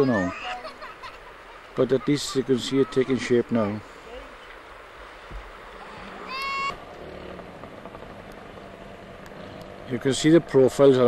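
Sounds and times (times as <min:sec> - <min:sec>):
distant engine hum: 0:02.8 - 0:11.0
short high-pitched call: 0:06.2 - 0:06.8.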